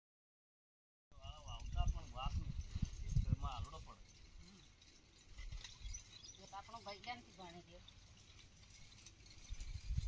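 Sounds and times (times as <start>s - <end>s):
wind buffeting microphone: 1.2s - 7.1s, 7.9s - 10.0s
faint outdoor noise: 1.2s - 10.0s.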